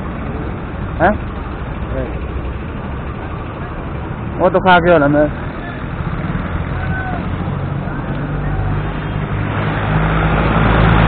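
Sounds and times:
motorcycle engine rumbling: 0.0s - 11.0s.

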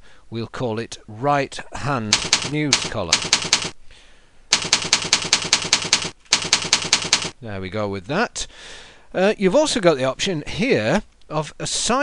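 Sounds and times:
computer keyboard typing: 2.1s - 3.8s, 4.5s - 7.4s.

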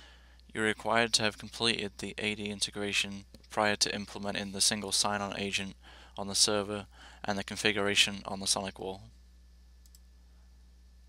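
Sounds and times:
low steady hum: 0.0s - 11.0s
faint high ticks: 9.8s - 10.1s.

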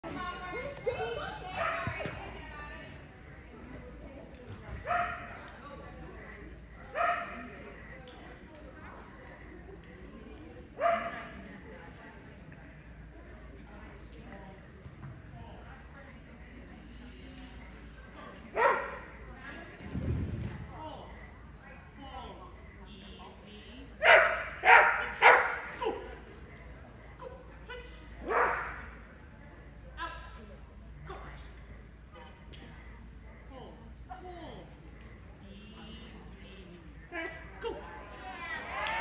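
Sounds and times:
dog barking in large hall: 4.8s - 5.4s, 6.8s - 7.6s, 10.8s - 11.4s, 18.5s - 19.2s, 24.0s - 26.1s, 28.2s - 29.0s.

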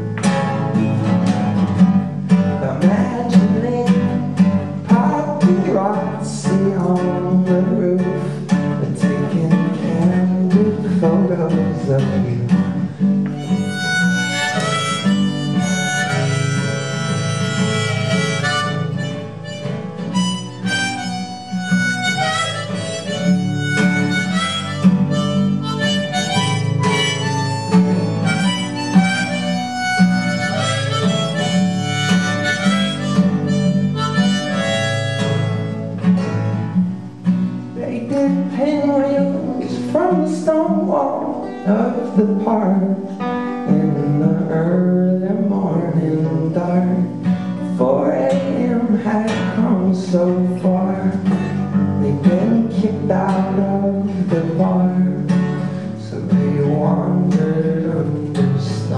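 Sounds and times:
acoustic guitar strummed: 0.0s - 58.9s
harmonica melody: 13.2s - 44.9s.

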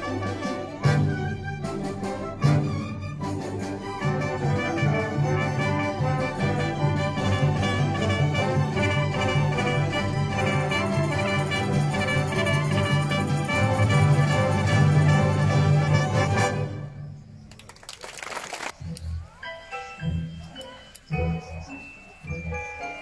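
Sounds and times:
symphony orchestra playing: 0.0s - 17.0s.

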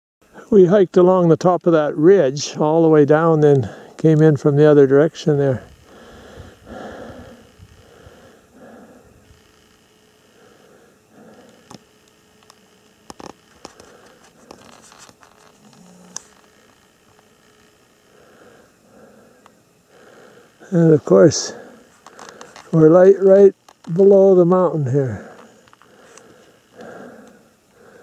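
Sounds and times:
faint breathing: 3.6s - 4.0s, 5.6s - 9.5s, 10.2s - 11.8s, 13.6s - 16.2s, 18.0s - 20.7s, 21.4s - 22.8s, 25.1s - 28.0s
soft handling rustle: 13.1s - 17.3s.

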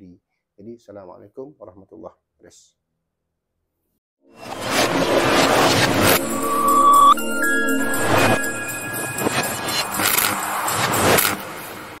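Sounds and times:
noisy swelling sound effects: 4.3s - 10.7s.

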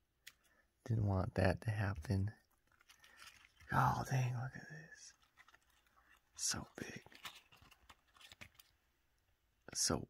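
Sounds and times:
leaves rustling and ticking: 2.4s - 8.8s.

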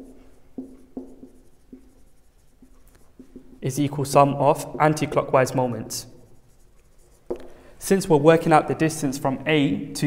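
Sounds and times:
marker pen on whiteboard: 0.0s - 10.0s.

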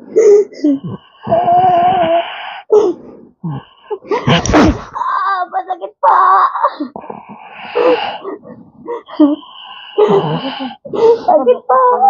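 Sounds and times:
woman moaning in pain: 3.9s - 12.0s
breathy gasps: 6.8s - 11.4s.

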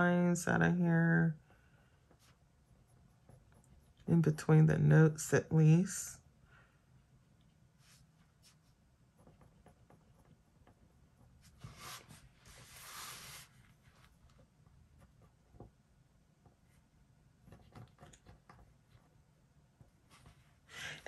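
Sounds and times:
pen scratching on paper: 8.4s - 14.1s
paper sliding across desk: 11.5s - 13.8s.

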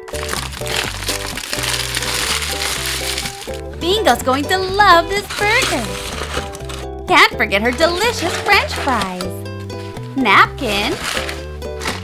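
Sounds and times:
paper wrapper crinkling: 0.0s - 7.0s, 7.6s - 12.0s.

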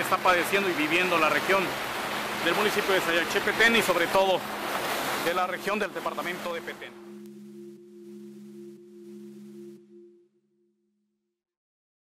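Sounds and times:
low musical drone: 0.0s - 10.6s.

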